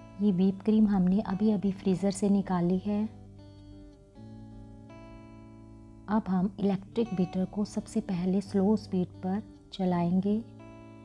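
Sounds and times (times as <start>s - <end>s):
soft background music chords: 0.0s - 11.0s.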